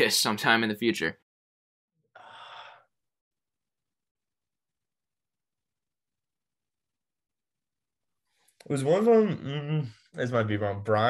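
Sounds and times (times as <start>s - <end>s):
man sighing: 2.2s - 2.9s.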